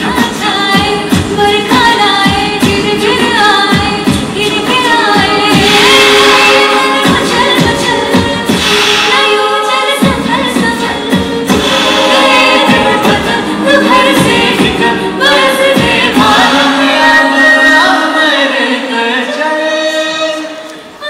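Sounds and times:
music with steady beat: 0.0 - 17.1
women singing into microphones: 0.0 - 21.0.

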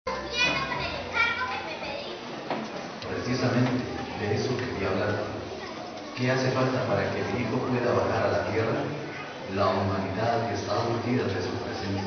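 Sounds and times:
children calling out: 0.1 - 2.4, 8.8 - 9.5.

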